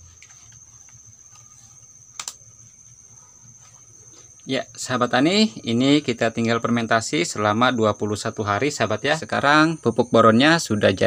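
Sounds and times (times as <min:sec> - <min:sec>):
insects droning: 0:00.0 - 0:11.0
sharp click: 0:02.2 - 0:02.4.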